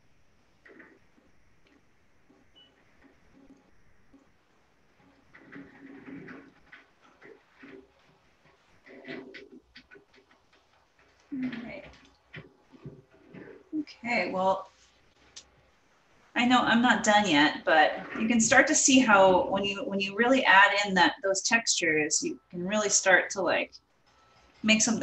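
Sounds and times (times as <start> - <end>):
soft scratches and taps: 0.6 - 4.4, 5.0 - 15.9
faint voice murmuring: 11.3 - 11.9.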